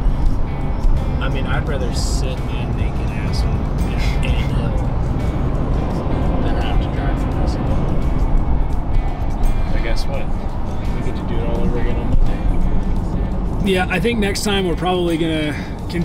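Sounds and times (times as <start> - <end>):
car road noise: 0.0 - 16.0
music with singing: 0.0 - 16.0.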